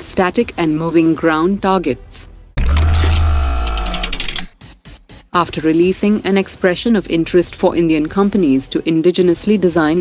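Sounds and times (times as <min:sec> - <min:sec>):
deep bass tone: 0:02.6 - 0:04.4
rapid electronic ticks: 0:02.6 - 0:04.7.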